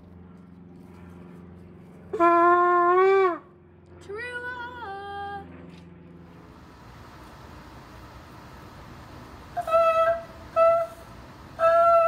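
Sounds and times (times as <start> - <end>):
shofar blasts: 2.1 - 3.4, 9.5 - 12.0.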